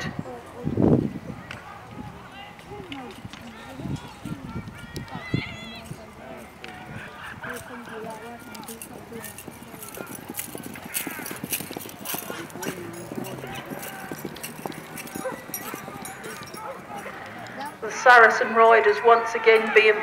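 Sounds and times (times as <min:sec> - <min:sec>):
people talking: 0:00.0 - 0:20.0
horse hooves on grass: 0:01.8 - 0:18.6.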